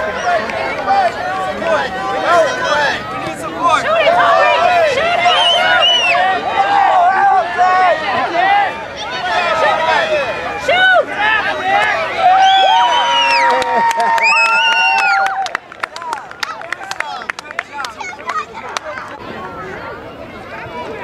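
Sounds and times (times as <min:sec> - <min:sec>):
children shouting and cheering: 0:03.6 - 0:21.0
sharp claps: 0:13.2 - 0:19.2.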